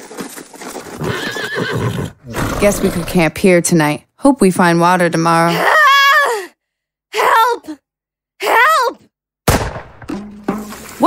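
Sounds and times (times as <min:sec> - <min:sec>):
rifle shot with echo: 0:09.5 - 0:10.1.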